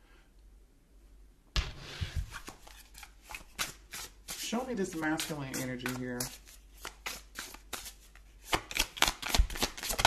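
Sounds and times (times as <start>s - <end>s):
cards shuffling: 2.0s - 10.0s.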